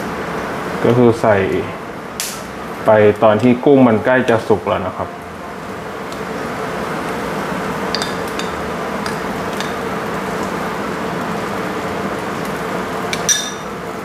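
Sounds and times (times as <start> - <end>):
prawns sizzling on a grill: 0.0 - 14.0.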